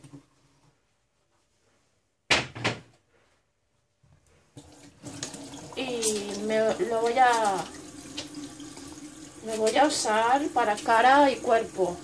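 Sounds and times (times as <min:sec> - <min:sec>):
water running into sink: 0:04.6 - 0:12.0.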